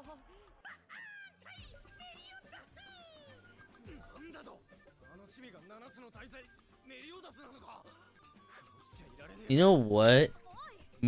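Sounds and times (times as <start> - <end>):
quiet soundtrack music: 0.0 - 11.0.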